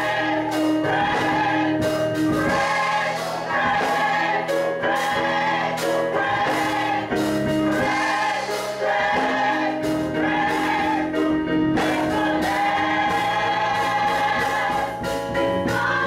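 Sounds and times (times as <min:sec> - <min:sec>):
gospel choir singing: 0:00.0 - 0:16.0
instrumental accompaniment: 0:00.0 - 0:16.0
steady beat: 0:00.0 - 0:16.0.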